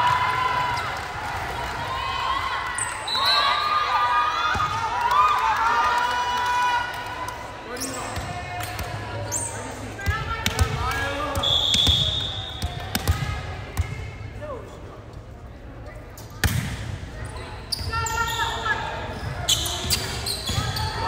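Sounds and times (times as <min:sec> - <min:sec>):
referee whistle blast: 0:11.4 - 0:12.7.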